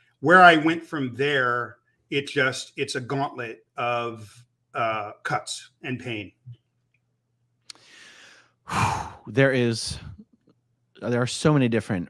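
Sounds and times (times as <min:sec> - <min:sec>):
man speaking: 0:00.2 - 0:06.6, 0:08.7 - 0:10.2, 0:11.0 - 0:12.0
man's mouth click: 0:07.6 - 0:07.8
man sighing: 0:07.7 - 0:09.3.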